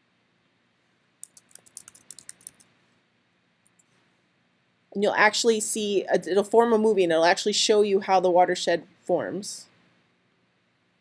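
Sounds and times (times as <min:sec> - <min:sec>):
keyboard typing: 0:01.2 - 0:02.6
faint clicks: 0:01.2 - 0:02.7.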